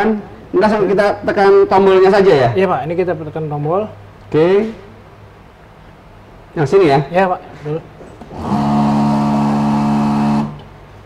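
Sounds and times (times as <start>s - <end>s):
filling machine pump humming: 8.3s - 10.8s.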